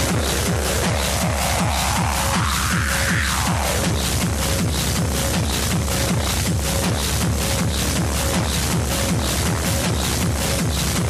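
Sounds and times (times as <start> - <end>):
fast kick drum: 0.0 - 11.0
hard techno music: 0.0 - 11.0
hi-hats: 0.0 - 11.0.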